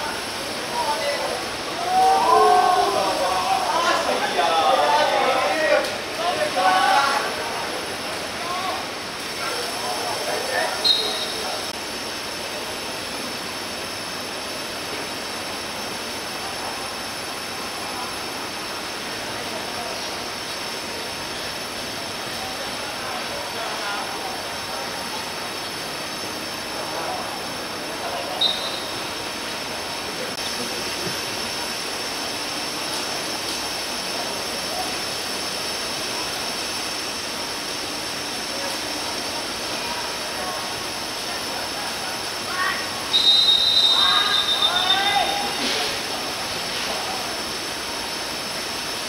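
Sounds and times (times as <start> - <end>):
steady outdoor hiss: 0.0 - 49.0
referee's pea whistle: 10.8 - 11.6, 28.4 - 29.1, 43.1 - 45.6
distant shouts from players: 42.6 - 45.7.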